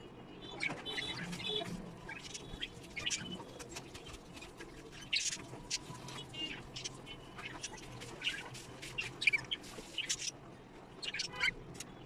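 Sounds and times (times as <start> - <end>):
budgerigars chirping: 11.0 - 11.6.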